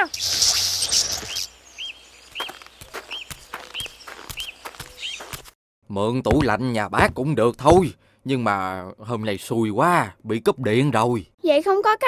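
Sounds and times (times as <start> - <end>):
quiet outdoor ambience: 0.0 - 5.4
bird chirping: 0.0 - 5.5.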